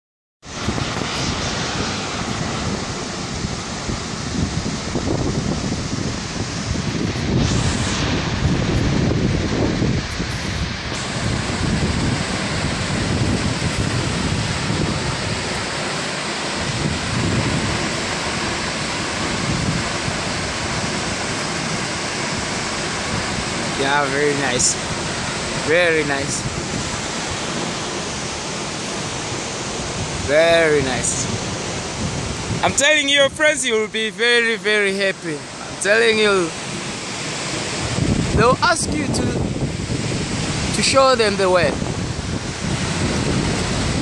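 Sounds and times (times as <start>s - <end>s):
wind buffeting microphone: 0.4s - 44.0s
waterfall rushing: 0.5s - 44.0s.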